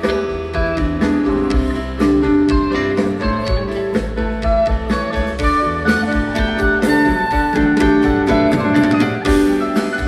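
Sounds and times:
rock band playing live: 0:00.0 - 0:10.0
steady drum beat: 0:00.0 - 0:10.0.

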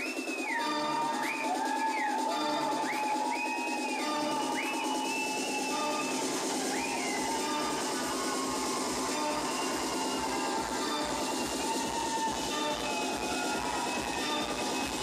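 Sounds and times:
techno synth phrase: 0:02.2 - 0:15.0.

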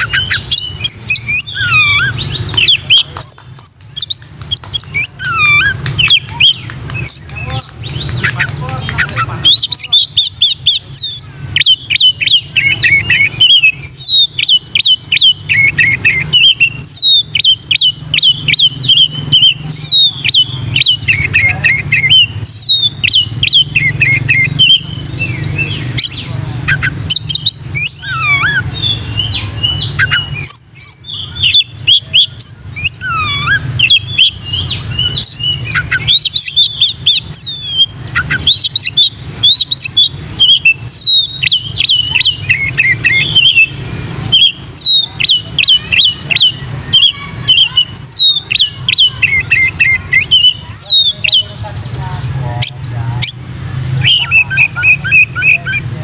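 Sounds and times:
bird singing whistled notes: 0:00.0 - 0:52.0, 0:52.6 - 0:55.9.

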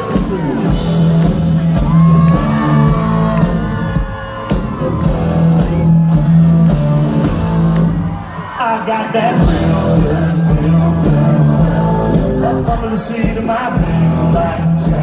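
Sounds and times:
live country band playing: 0:00.0 - 0:15.0
lead vocal singing: 0:08.4 - 0:15.0.

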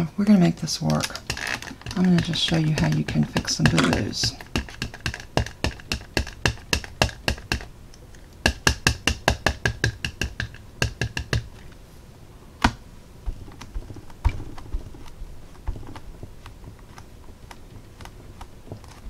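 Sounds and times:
rapid light tapping on table: 0:01.2 - 0:07.7, 0:08.4 - 0:11.6.

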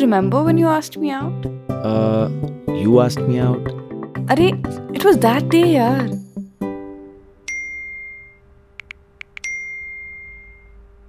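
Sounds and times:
phone message chime: 0:07.5 - 0:08.4, 0:09.4 - 0:10.8
phone keyboard typing taps: 0:08.8 - 0:09.6.

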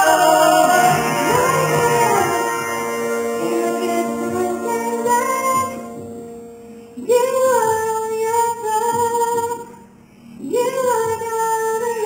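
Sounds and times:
woman singing gospel song: 0:00.0 - 0:09.8, 0:10.4 - 0:12.0
instrumental accompaniment: 0:00.0 - 0:09.9.

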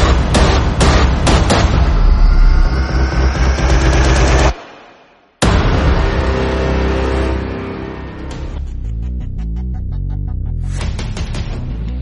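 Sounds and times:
heavy hit with ringing tail: 0:00.8 - 0:07.8
sustained low tones: 0:01.8 - 0:10.3.

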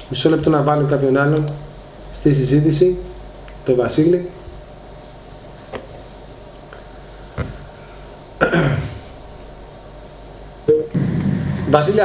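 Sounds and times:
call line hum and hiss: 0:00.0 - 0:12.0.

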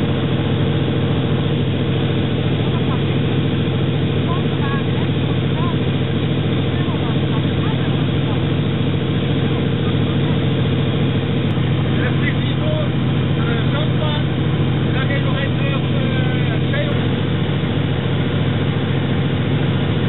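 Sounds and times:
radial aircraft engine drone: 0:00.0 - 0:20.0.

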